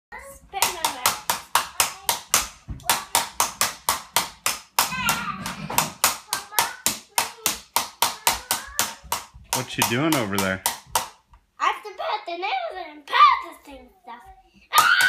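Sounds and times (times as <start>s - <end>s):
child clapping: 0.6s - 11.2s.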